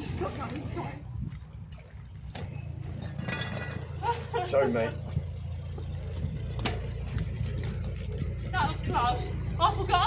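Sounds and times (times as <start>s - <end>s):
boat diesel engine humming: 0.0s - 10.0s.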